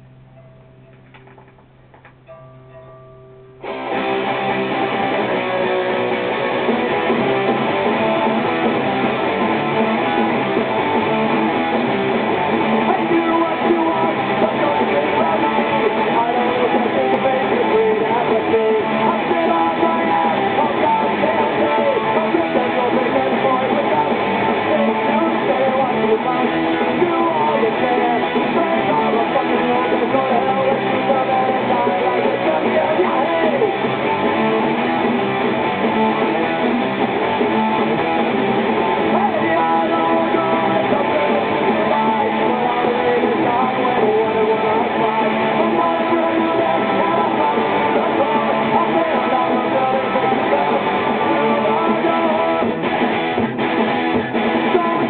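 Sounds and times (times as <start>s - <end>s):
amplifier hum: 0.0s - 12.9s
electric guitar notes: 0.0s - 55.0s
punk rock guitar strumming: 0.0s - 55.0s.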